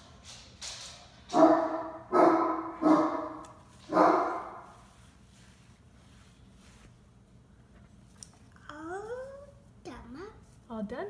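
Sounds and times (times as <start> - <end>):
dog barking: 1.3 - 4.6.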